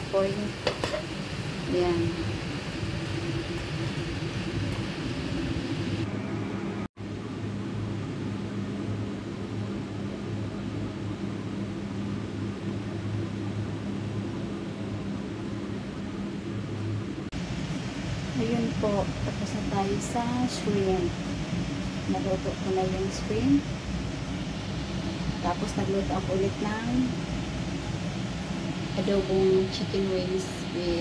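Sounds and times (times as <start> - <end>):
prawns sizzling in a wok: 0.0 - 6.0
machine humming: 0.0 - 8.2, 16.8 - 31.0.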